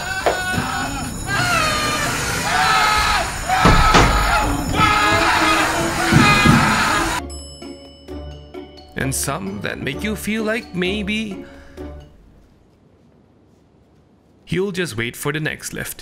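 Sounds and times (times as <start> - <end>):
man screaming: 0.0 - 7.2
background music: 0.0 - 12.5.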